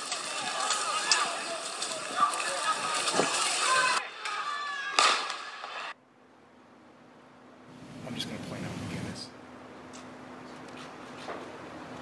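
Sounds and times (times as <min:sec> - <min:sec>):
noisy outdoor street sound: 0:00.0 - 0:12.0.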